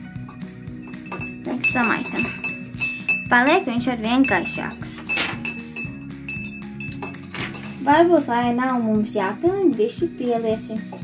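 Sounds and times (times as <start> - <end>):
background music: 0.0 - 11.0
spoon clinking in glass: 0.2 - 7.9.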